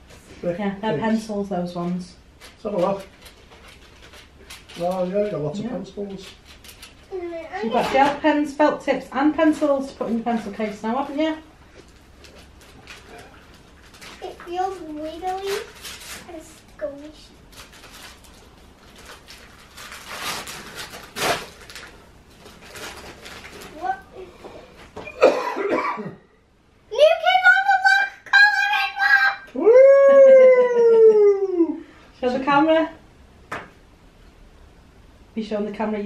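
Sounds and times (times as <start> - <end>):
wrapping paper rustling: 2.4 - 7.3, 11.8 - 24.1
child calling out: 27.0 - 30.3.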